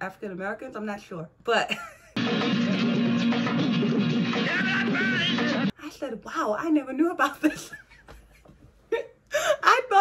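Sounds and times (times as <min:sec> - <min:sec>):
woman laughing: 0:01.7 - 0:02.9, 0:07.2 - 0:09.7.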